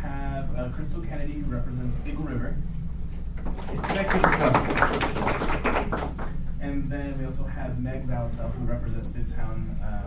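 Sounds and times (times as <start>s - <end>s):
small group clapping: 3.4s - 6.4s.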